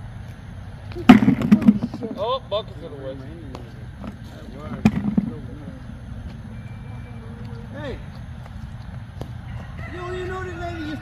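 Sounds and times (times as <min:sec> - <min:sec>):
outdoor background noise: 0:00.0 - 0:11.0
faint voices: 0:00.9 - 0:11.0.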